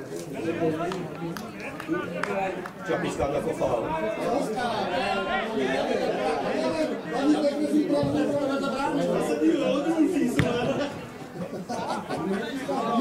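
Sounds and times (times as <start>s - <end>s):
chatter of voices: 0.0s - 13.0s.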